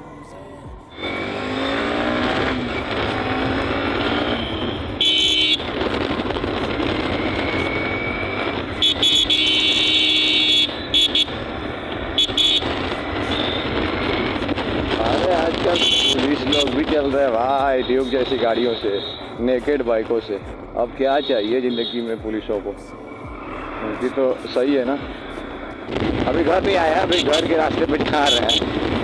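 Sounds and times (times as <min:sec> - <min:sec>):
motorcycle engine accelerating: 0:00.9 - 0:08.7
loud high-pitched blasts: 0:00.9 - 0:19.4
wind noise: 0:25.8 - 0:29.0.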